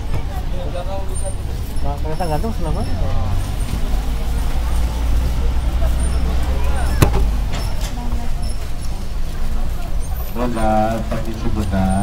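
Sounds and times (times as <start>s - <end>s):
bus engine rumble: 0.0s - 12.0s.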